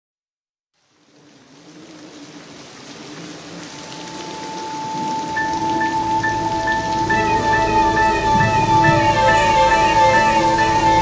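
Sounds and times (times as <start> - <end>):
rain: 0.7 - 11.0.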